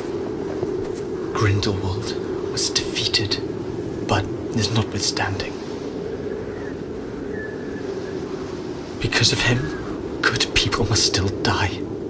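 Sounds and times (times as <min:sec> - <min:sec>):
low rumble of wind: 0:00.0 - 0:12.0.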